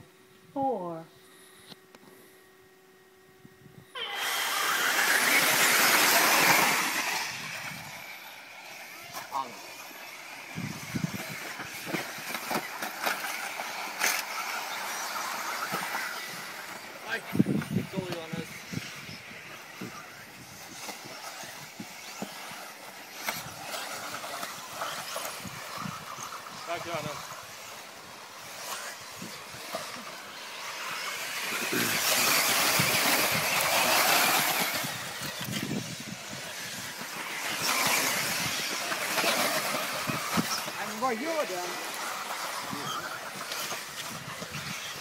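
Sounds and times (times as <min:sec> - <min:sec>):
rc car motor whine: 0:00.0 - 0:45.0.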